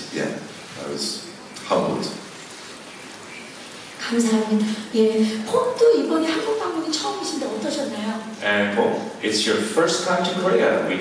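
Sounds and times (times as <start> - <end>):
room noise hiss: 0.0 - 11.0.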